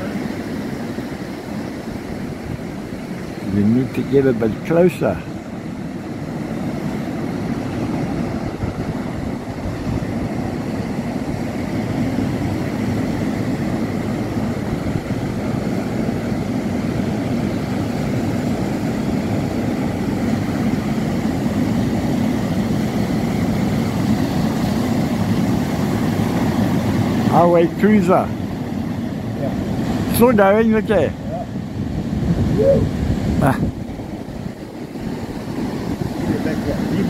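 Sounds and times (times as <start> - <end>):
wind buffeting microphone: 0.0 - 4.0, 5.3 - 37.0
surf breaking on rocks: 0.0 - 31.2.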